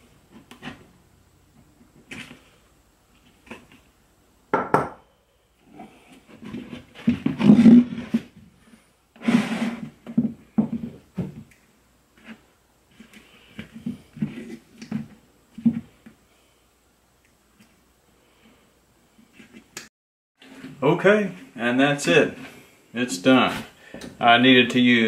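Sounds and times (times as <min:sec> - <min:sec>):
rubbing and scraping of hide: 0:05.6 - 0:11.3, 0:12.1 - 0:16.0, 0:20.4 - 0:23.8.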